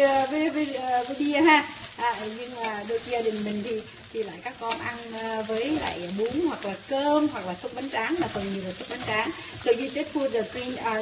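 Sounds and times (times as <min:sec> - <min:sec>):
meat and onions sizzling in a pan: 0:00.0 - 0:11.0
stirring with chopsticks and spatula: 0:00.0 - 0:11.0
woman talking: 0:00.0 - 0:11.0.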